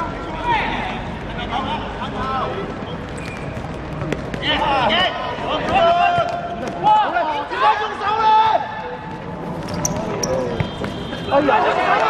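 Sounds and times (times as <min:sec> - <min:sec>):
ball kicked and bouncing: 0:03.0 - 0:04.7, 0:09.1 - 0:11.0
players shouting: 0:04.4 - 0:09.1, 0:10.2 - 0:12.0.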